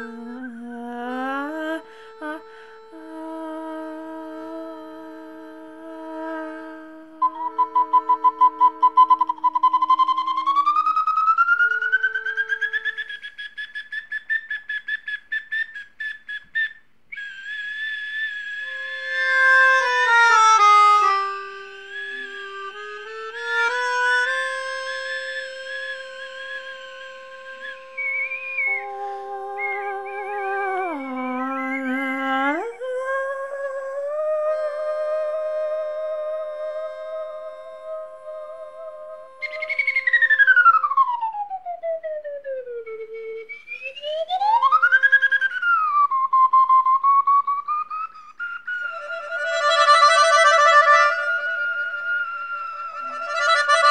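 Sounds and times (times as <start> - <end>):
melodica held tones: 0.0 - 13.1, 18.4 - 31.9, 34.5 - 40.8, 48.7 - 53.9
whistle-like wind instrument: 6.0 - 32.2, 34.4 - 53.9.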